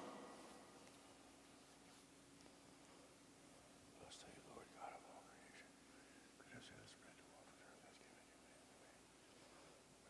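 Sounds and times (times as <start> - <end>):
faint whispering: 3.9 - 10.0.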